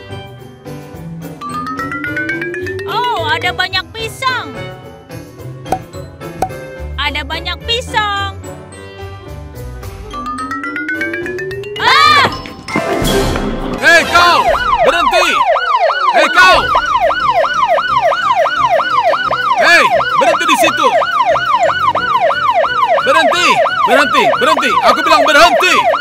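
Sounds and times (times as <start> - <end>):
police siren yelping: 1.4 - 3.8, 10.1 - 12.4, 14.0 - 26.0.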